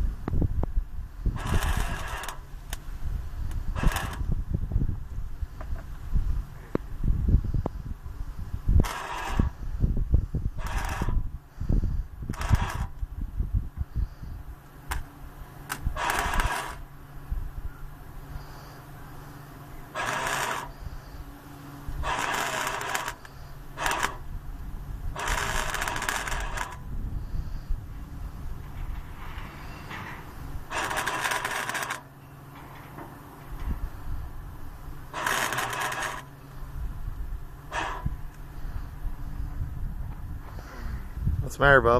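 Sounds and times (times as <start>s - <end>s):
steady low hum: 0.0s - 41.9s
arc welding crackle: 1.4s - 2.9s, 3.5s - 4.3s, 8.8s - 9.6s, 10.6s - 11.2s, 12.3s - 13.0s, 15.7s - 16.9s, 19.9s - 20.8s, 21.9s - 24.3s, 25.1s - 26.8s, 30.6s - 32.1s, 35.1s - 36.4s, 37.7s - 38.4s.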